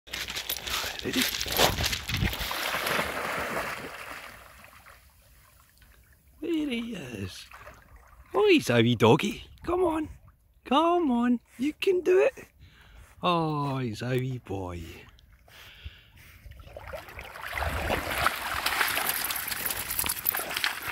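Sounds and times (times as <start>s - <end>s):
dog splashing in water: 1.4s - 5.0s, 16.7s - 20.9s
dog swimming: 16.0s - 20.9s.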